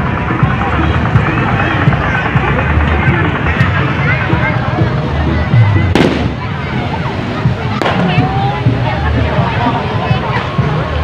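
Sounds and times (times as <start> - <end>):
crowd voices: 0.0 - 11.0
music: 0.0 - 11.0
firework bang: 5.9 - 6.6, 7.8 - 8.3.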